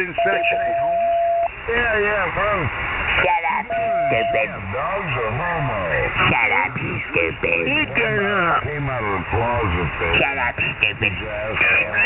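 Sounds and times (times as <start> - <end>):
person talking over shortwave radio: 0.0 - 1.2, 3.2 - 12.0.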